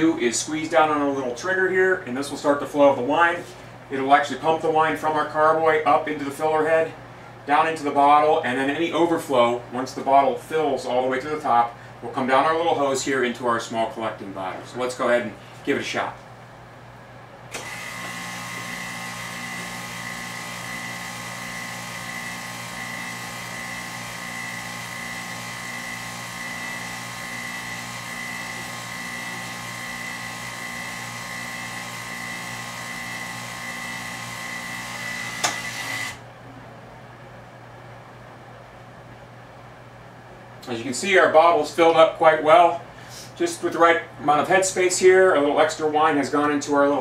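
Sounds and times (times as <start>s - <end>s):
electric pump whining: 17.5s - 36.3s.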